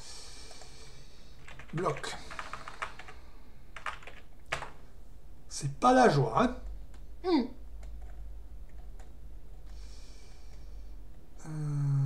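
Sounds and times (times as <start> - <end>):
keyboard typing: 1.4 - 3.2, 3.8 - 4.8.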